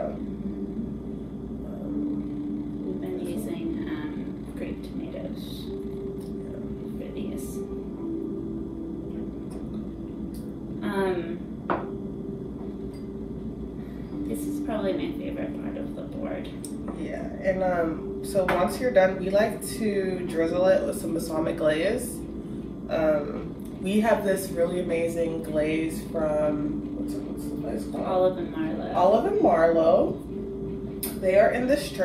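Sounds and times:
soft wavering vocal tones: 0.0s - 32.0s.

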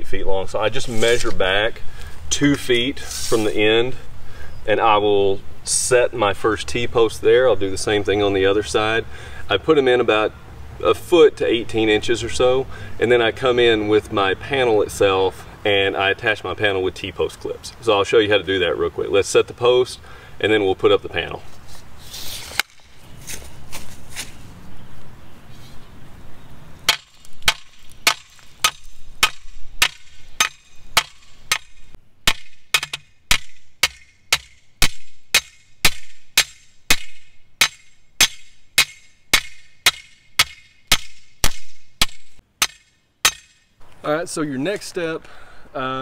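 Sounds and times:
metal post struck into ground: 26.9s - 43.7s.

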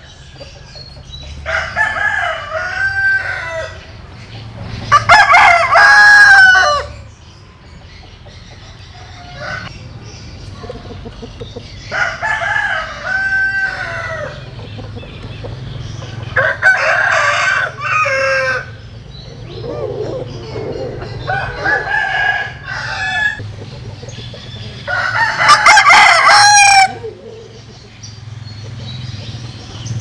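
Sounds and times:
roosters crowing: 0.0s - 9.8s, 10.6s - 28.0s.

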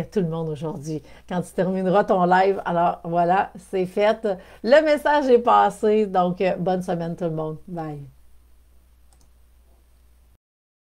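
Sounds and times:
faint clicks: 9.1s - 9.4s.

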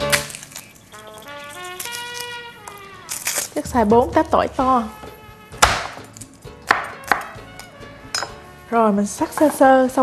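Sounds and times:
knife chopping on wooden board: 5.6s - 7.4s.

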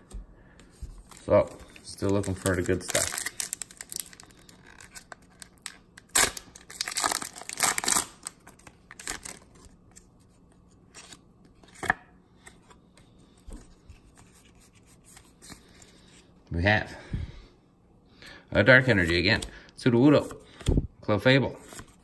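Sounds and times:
foil wrapper tearing: 1.2s - 9.5s.

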